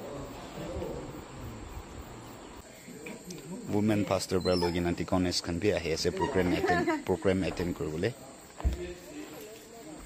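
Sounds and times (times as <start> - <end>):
faint voices murmuring: 0.0 - 10.0
insects chirring: 0.0 - 10.0.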